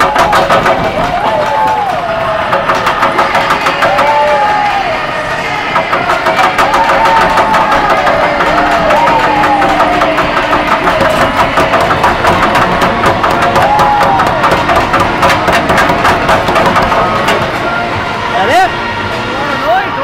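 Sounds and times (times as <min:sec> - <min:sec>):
banging on plexiglass rink boards: 0:00.0 - 0:17.9
arena crowd noise: 0:00.0 - 0:20.0
sliding pitched tone music: 0:00.0 - 0:20.0.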